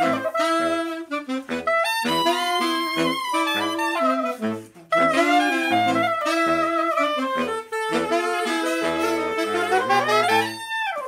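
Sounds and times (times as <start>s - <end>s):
saxophones and clarinet playing march: 0.0s - 11.0s.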